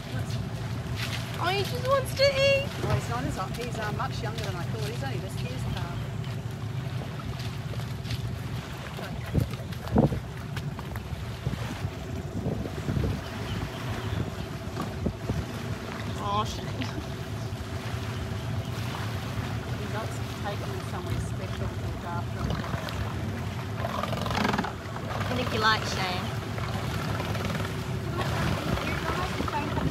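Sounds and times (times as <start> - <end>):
low steady hum: 0.0 - 29.9
water lapping around boat: 0.0 - 29.9
wind buffeting microphone: 0.0 - 29.9.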